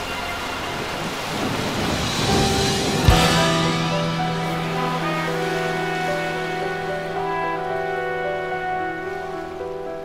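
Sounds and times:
rain hiss: 0.0 - 9.0.

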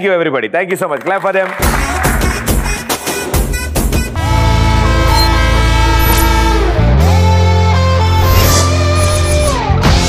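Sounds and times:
audience clapping: 0.7 - 3.5
music: 1.6 - 10.0
train horn blast: 4.2 - 6.9.

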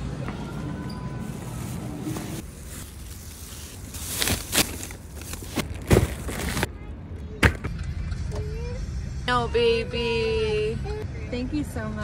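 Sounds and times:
plastic bags rustling: 1.2 - 6.7.

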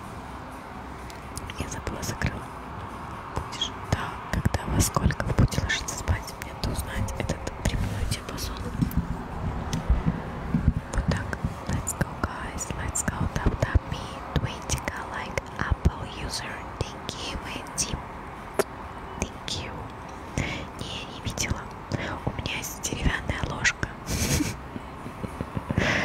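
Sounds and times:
person whispering: 1.4 - 2.5, 3.4 - 8.9, 10.9 - 18.0, 19.2 - 24.1
hissing breaths: 25.7 - 26.0.

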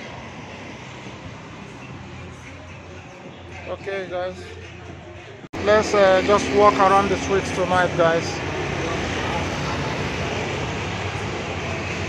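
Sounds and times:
cars passing: 0.0 - 12.0
motor scooter passing: 5.6 - 12.0.

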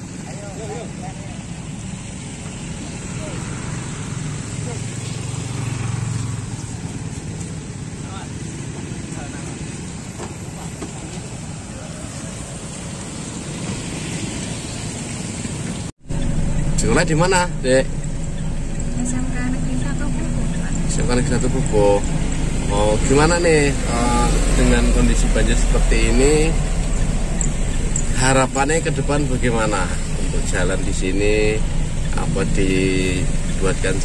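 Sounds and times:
vehicle engine running: 0.0 - 34.0
indistinct voices: 16.1 - 34.0.

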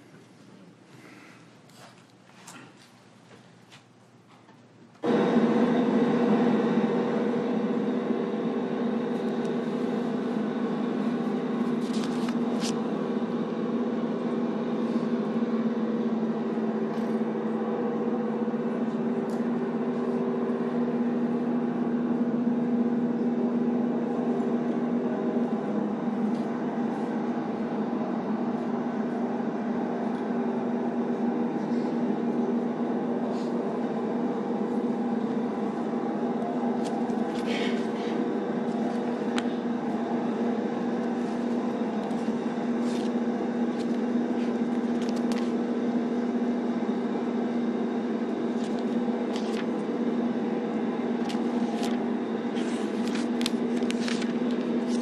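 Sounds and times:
mechanical drone: 5.0 - 55.0.

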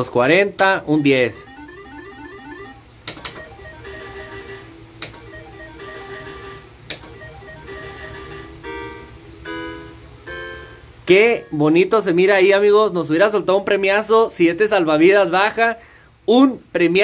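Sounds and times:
electronic game music: 0.8 - 11.9
sharp clicks: 3.0 - 3.5, 5.0 - 5.2, 6.9 - 7.2.

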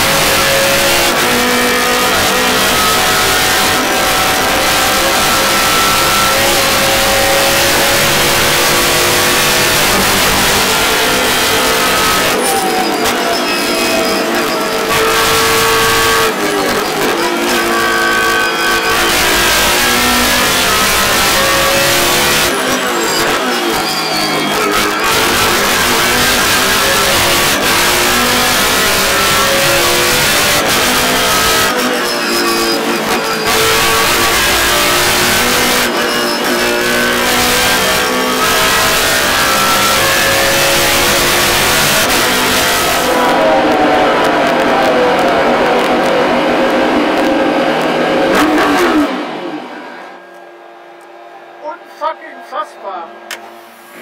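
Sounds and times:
race car engine at speed: 0.0 - 54.0.

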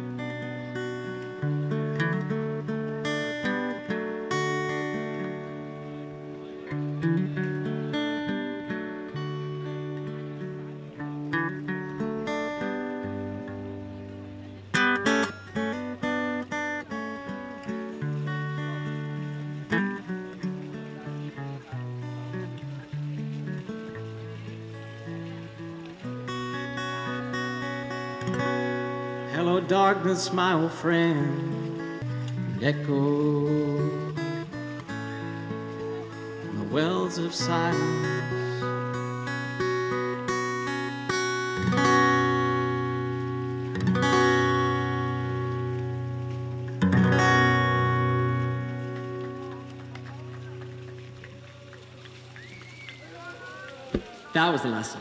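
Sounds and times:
amplified guitar strumming and picking: 0.0 - 52.3.

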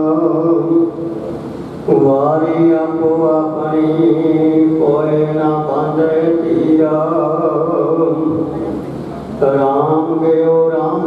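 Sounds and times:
man chanting scripture: 0.0 - 1.2, 1.9 - 11.0.

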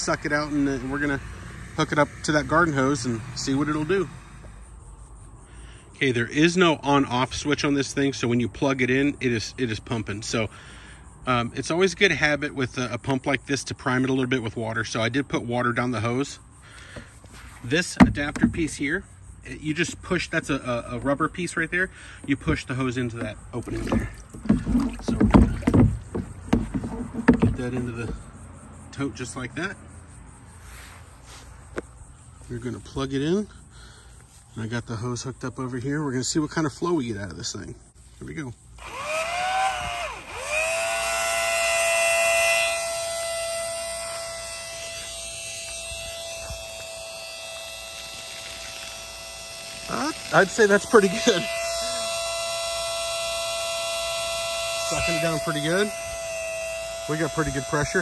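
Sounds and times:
electric water pump humming: 0.0 - 4.8, 19.7 - 28.3, 38.8 - 58.0
water sloshing in plastic tote: 23.1 - 28.2.

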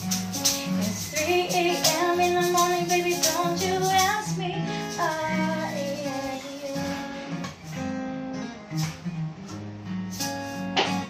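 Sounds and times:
strummed acoustic guitar: 0.0 - 11.0
woman singing: 0.6 - 7.5.

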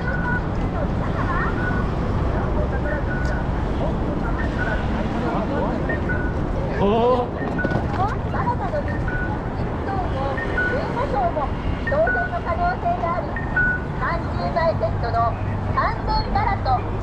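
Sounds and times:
low traffic rumble: 0.0 - 17.0
passers-by talking: 0.0 - 17.0.

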